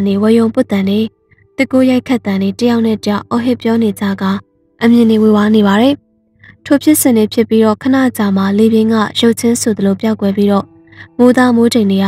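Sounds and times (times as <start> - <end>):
person narrating a story: 0.0 - 12.0.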